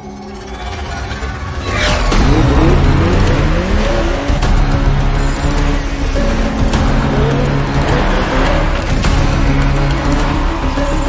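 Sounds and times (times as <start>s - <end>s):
dramatic soundtrack music: 0.0s - 11.0s
car engine revving: 1.1s - 11.0s.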